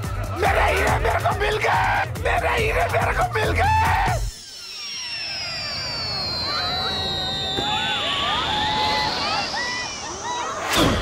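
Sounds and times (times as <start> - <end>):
loud music: 0.0 - 4.3
crowd shouting and cheering: 0.0 - 11.0
long whistling glide: 4.3 - 11.0.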